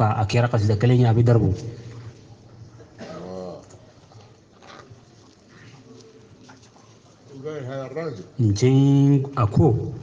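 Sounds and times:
faint murmured sounds: 0.0 - 10.0
man talking: 7.3 - 10.0.

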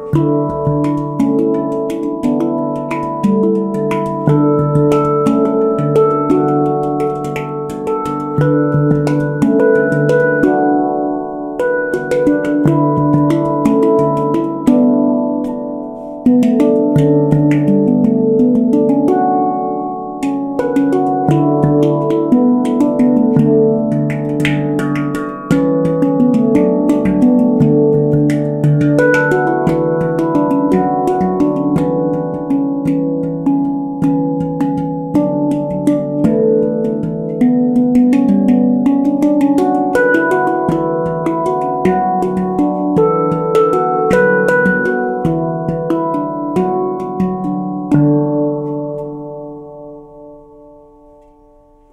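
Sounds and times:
sharp taps on handpan: 0.0 - 50.1
handpan played by hand: 0.0 - 51.9.

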